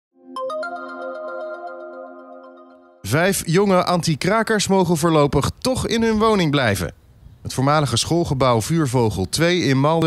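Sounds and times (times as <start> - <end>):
electronic news jingle: 0.2 - 4.0.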